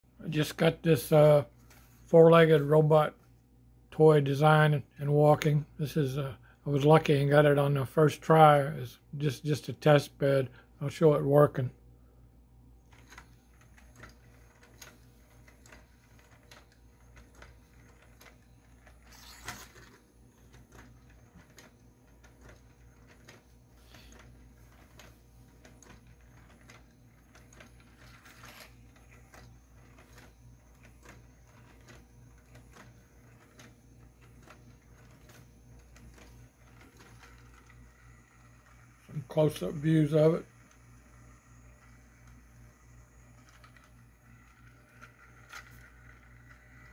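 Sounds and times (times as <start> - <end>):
plastic feet on wooden desk: 12.9 - 41.0
walking toy mechanical ticks: 13.0 - 46.9.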